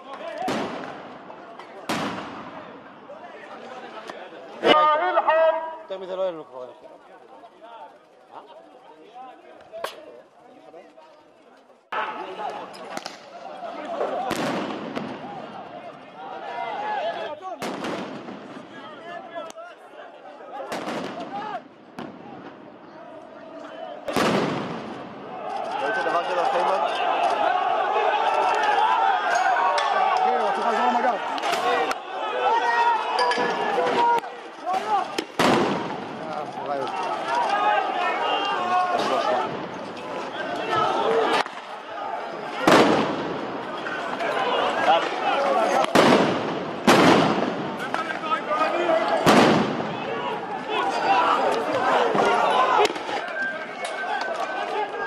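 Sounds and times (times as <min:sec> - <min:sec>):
crowd shouting: 0:00.0 - 0:55.0.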